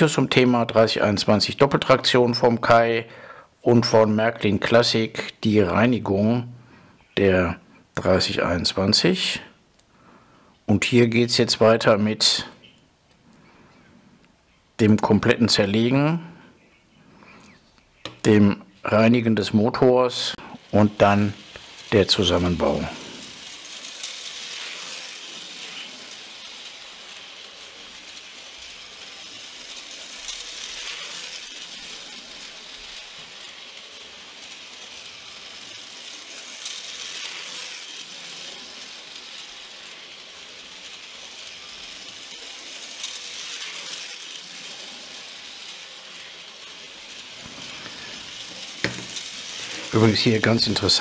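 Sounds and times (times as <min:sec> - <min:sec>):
model locomotive motor whir: 0:00.0 - 0:14.2, 0:17.1 - 0:51.0.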